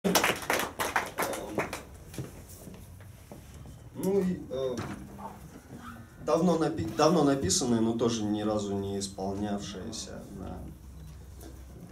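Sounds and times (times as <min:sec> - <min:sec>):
hand claps in a hall: 0:00.0 - 0:02.3.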